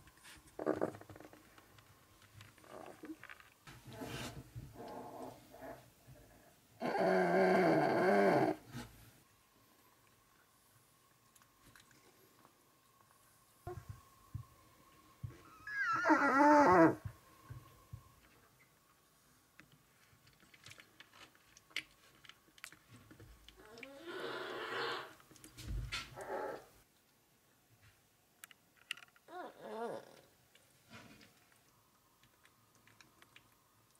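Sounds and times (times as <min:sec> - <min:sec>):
bear cub crying: 0:15.5 - 0:17.0.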